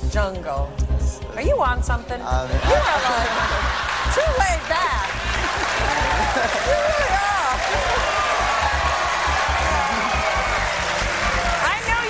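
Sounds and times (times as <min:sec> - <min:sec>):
audience applauding: 0:03.4 - 0:12.0.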